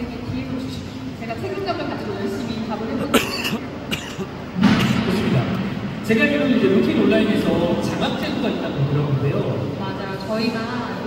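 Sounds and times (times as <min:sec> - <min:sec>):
person coughing: 0:03.0 - 0:05.1.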